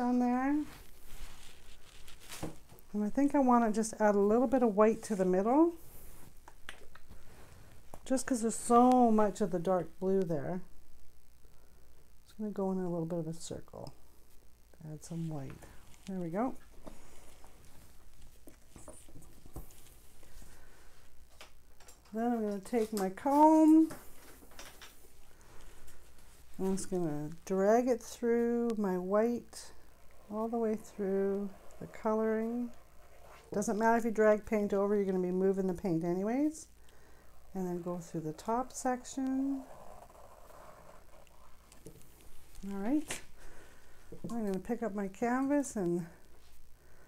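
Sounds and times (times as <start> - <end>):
comb scraping paint on canvas: 0.6 - 2.7, 28.0 - 36.7, 37.3 - 43.4.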